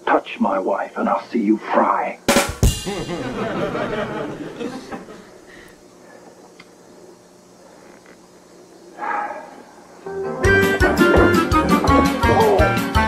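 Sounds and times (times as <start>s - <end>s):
lively music with drums and guitar: 2.3s - 3.4s, 10.4s - 13.0s.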